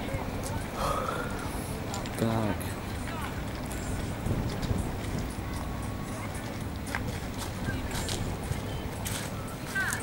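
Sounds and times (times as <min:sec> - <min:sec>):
faint distant voices: 0:00.0 - 0:10.0
wind rumbling on microphone: 0:00.0 - 0:10.0.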